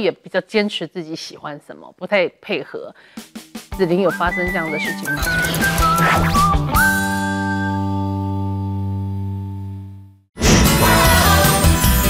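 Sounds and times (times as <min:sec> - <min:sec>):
high whistle-like note: 0:04.2 - 0:08.1.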